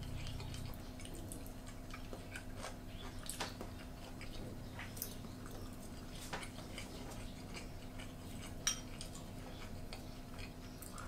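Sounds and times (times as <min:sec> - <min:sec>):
chewing: 0:00.0 - 0:11.0
low room hum: 0:00.0 - 0:11.0.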